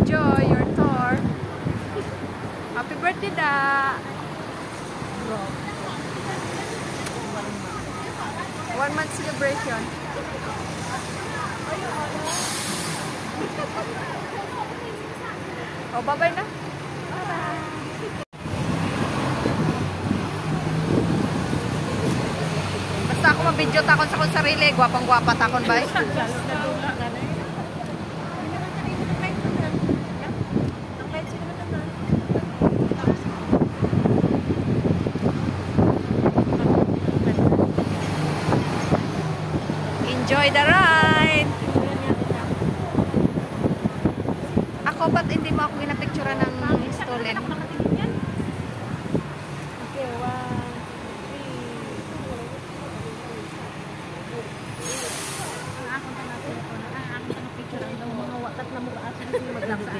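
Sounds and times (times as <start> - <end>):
bus engine rumble: 0.0 - 59.9
street and air noise: 0.0 - 59.9
air brakes hissing: 12.2 - 13.3, 54.8 - 55.8.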